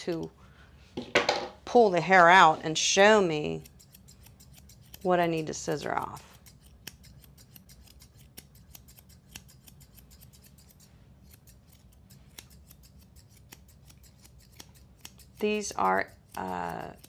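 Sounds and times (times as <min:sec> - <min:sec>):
grooming shears snipping hair: 0:02.2 - 0:17.0.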